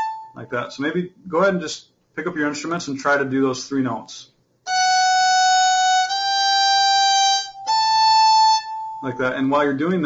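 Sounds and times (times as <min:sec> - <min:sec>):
violin sustained notes: 0:00.0 - 0:00.7, 0:04.7 - 0:10.0.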